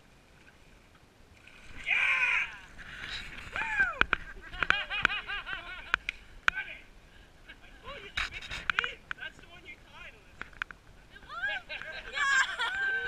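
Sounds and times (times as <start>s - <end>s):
high-pitched voices whooping: 1.8s - 2.7s, 3.5s - 4.1s, 11.2s - 13.0s.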